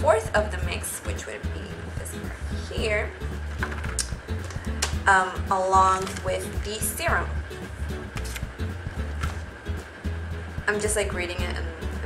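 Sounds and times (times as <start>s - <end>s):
music with pulsing bass: 0.0s - 12.0s.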